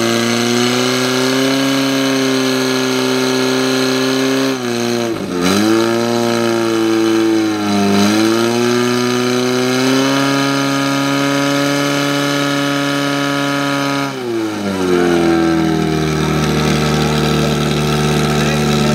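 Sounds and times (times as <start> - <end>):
fire pump engine running: 0.0 - 18.9.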